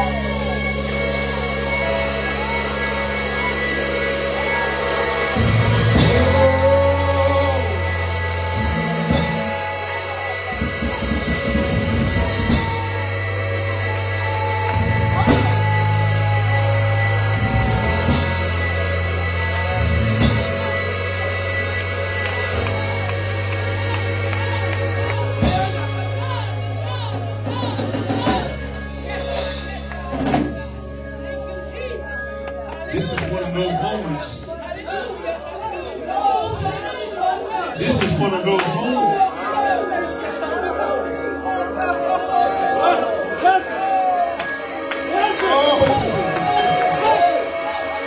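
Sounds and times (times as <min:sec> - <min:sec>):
voices praying aloud: 0:00.0 - 0:28.8
electric keyboard sustained chords: 0:00.0 - 0:48.0
man's voice on a microphone: 0:32.8 - 0:35.1, 0:36.3 - 0:40.1, 0:45.0 - 0:47.3.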